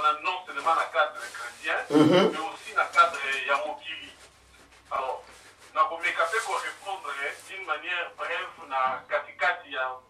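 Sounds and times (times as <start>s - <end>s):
person talking: 0.0s - 4.2s.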